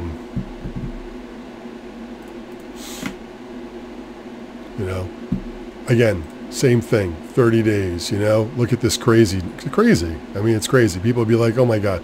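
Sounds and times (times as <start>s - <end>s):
fan hum: 0.0s - 12.0s
soft low thumps: 0.3s - 1.3s, 5.2s - 5.8s
short breathy hiss: 2.8s - 3.2s.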